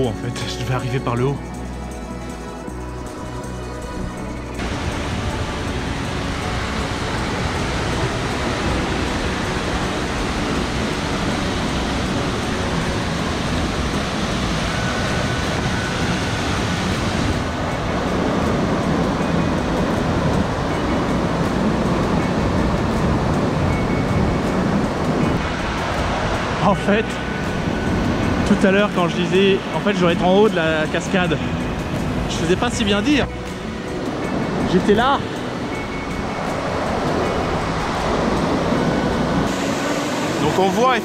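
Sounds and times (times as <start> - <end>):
waterfall rushing onto rocks: 4.6 - 27.1.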